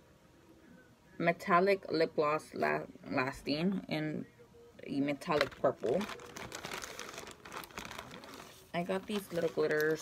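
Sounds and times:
plastic bag crinkling: 5.2 - 10.0.

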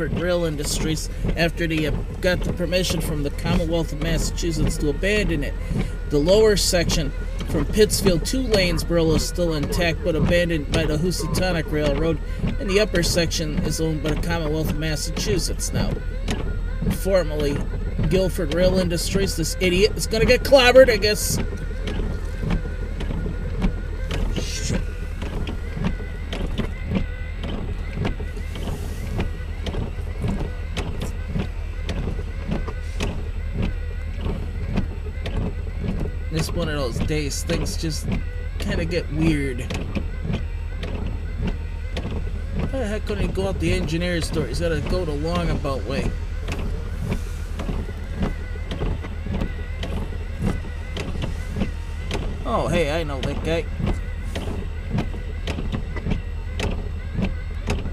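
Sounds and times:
raindrops tapping on a car: 0.0 - 57.9
steady low rumble: 0.0 - 57.9
windshield wiper sweep: 0.0 - 57.9.

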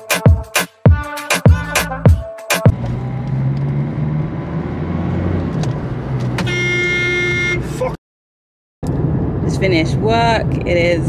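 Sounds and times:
car engine rumble: 2.7 - 8.0, 8.8 - 11.0
road noise inside car: 2.7 - 8.0, 8.8 - 11.0
held horn-like tone: 6.4 - 7.8.

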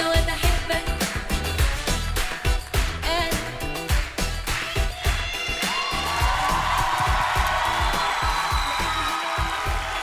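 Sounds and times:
live pop band playing: 0.0 - 10.0
steady drum beat: 0.1 - 10.0
audience cheering: 4.6 - 10.0.

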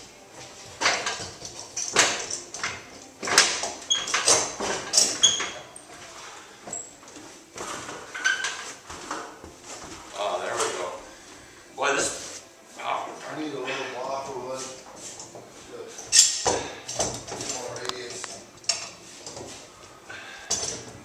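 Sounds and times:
bar clamps clicking and knocking: 0.8 - 5.6.

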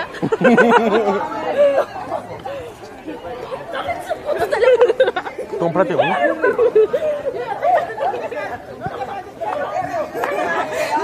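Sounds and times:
high voices chattering: 0.0 - 11.0.

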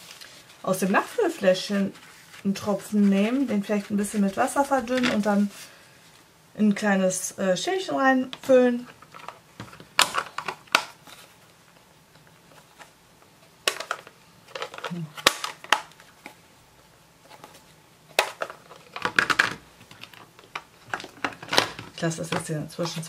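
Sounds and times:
plastic cases clicking and knocking: 8.9 - 11.0, 13.6 - 16.0, 18.1 - 23.0.

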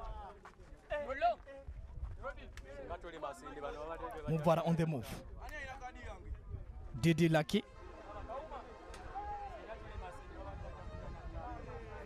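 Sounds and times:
faint shouting voices: 4.2 - 12.0.

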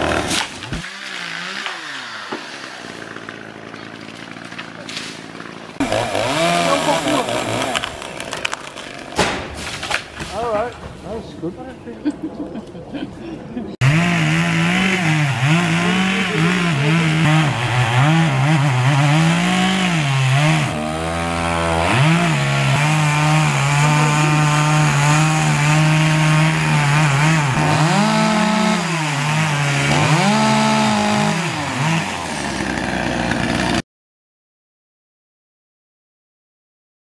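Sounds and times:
chainsaw cutting tree trunk: 0.0 - 9.3, 13.8 - 33.8.

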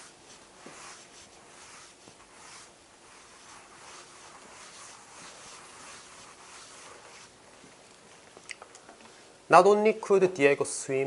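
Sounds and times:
eraser rubbing on chalkboard: 0.0 - 7.4.

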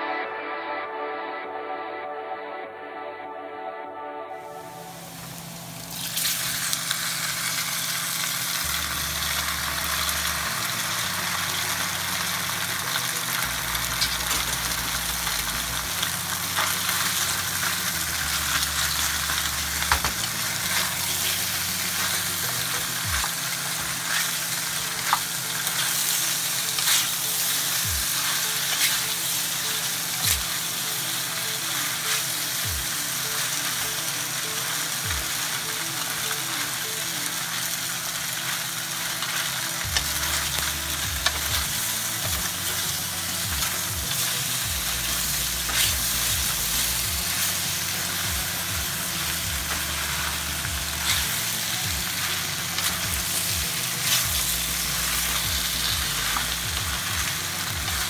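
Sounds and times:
pasta sizzling in oil: 4.9 - 58.0.

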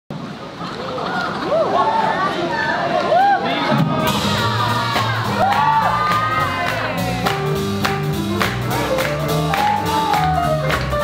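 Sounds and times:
crowd whooping and shouting: 0.8 - 7.3, 8.7 - 10.6
jazz band playing swing: 3.8 - 11.0.

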